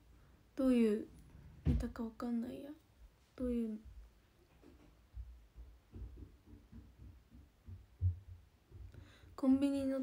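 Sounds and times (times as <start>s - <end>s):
soft low thumps: 4.9s - 10.0s.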